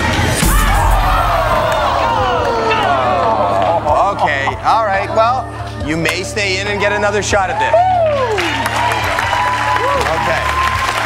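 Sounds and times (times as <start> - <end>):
audience groaning aww: 0.4 - 4.6.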